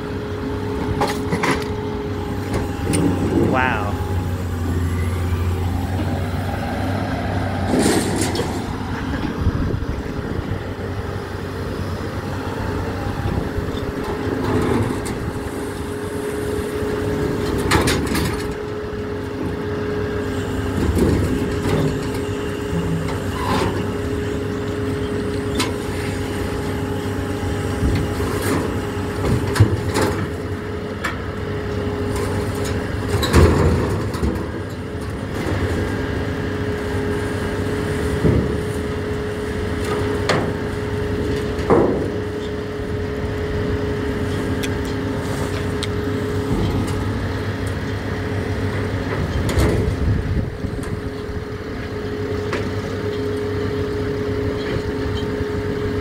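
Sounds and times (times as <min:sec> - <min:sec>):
engine and hydraulics droning: 0:00.0 - 0:56.0
steady hydraulic whine: 0:00.0 - 0:56.0.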